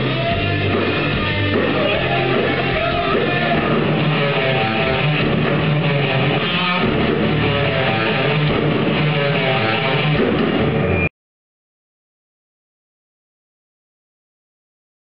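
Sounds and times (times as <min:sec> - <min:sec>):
live rock band playing: 0:00.0 - 0:11.1.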